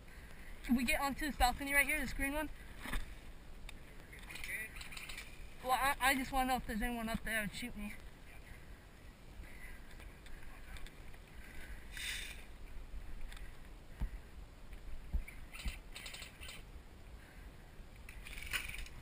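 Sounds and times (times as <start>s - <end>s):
short hissing rustles: 11.9s - 12.5s.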